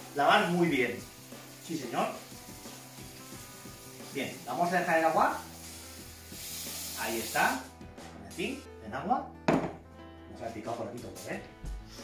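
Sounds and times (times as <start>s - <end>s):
tap water running: 0.0s - 7.7s
faint background music: 0.0s - 12.0s.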